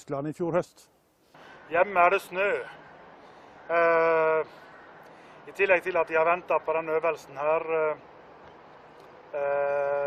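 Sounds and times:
man saying ehh: 9.3s - 10.0s.

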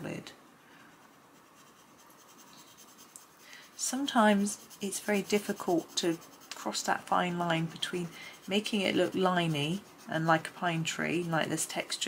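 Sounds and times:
pencil scratching on paper: 0.8s - 12.0s.

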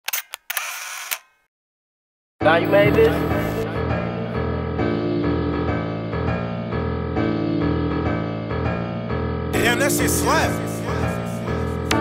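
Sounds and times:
camera shutter and wind: 0.0s - 1.4s
camera shutter clicks: 0.1s - 1.3s.

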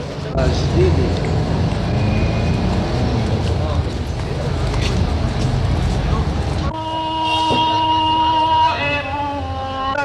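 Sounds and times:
vehicle engine rumbling: 0.0s - 9.7s.

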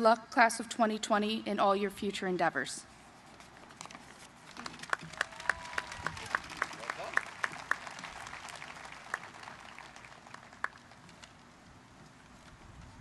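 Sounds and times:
nearby person clapping steadily: 4.5s - 11.3s
thin crowd applause: 4.5s - 11.4s.

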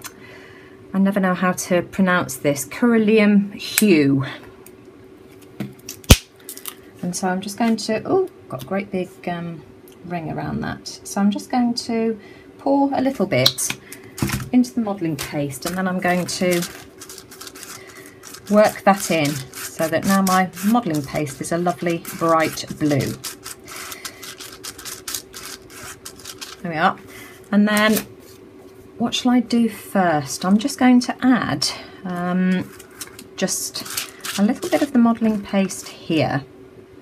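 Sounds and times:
palette knife scraping paste: 15.6s - 26.6s, 33.8s - 35.0s.

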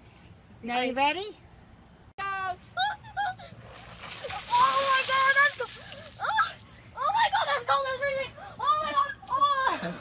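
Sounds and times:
ice water splashing: 3.8s - 6.6s.

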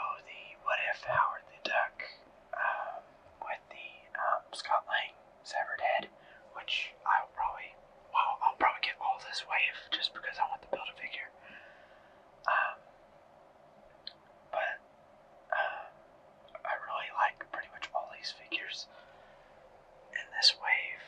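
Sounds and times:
person whispering: 0.0s - 11.4s, 12.4s - 12.9s, 14.5s - 14.8s, 15.5s - 16.0s, 16.6s - 19.0s, 20.1s - 21.0s.

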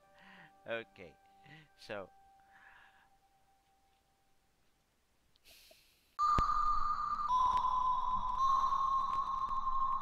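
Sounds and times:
high-pitched electronic tone: 6.2s - 10.0s.

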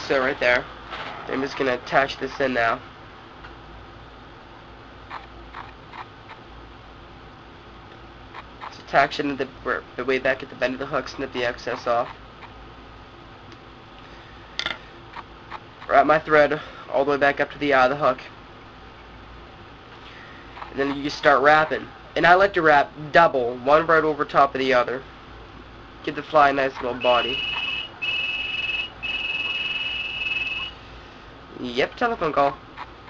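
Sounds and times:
low steady hum: 0.0s - 33.0s
telephone ringing: 27.0s - 30.8s.

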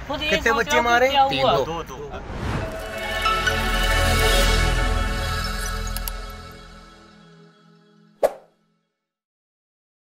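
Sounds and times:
outro music: 2.2s - 8.4s
short pop sound effect: 8.2s - 8.5s.

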